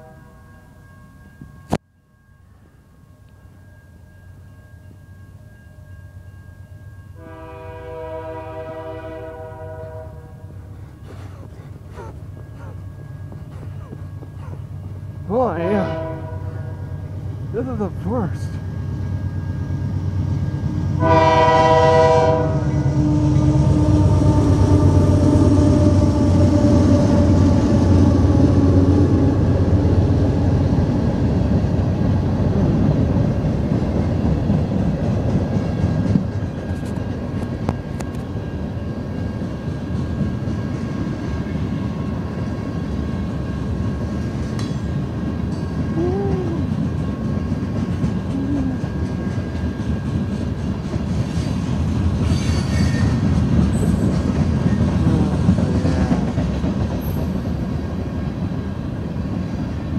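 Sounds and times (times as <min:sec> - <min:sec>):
train horn blast: 0:00.0 - 0:00.4, 0:07.2 - 0:10.8, 0:15.5 - 0:17.1, 0:20.9 - 0:27.3
locomotive engines running: 0:17.1 - 0:20.8, 0:29.1 - 0:59.9.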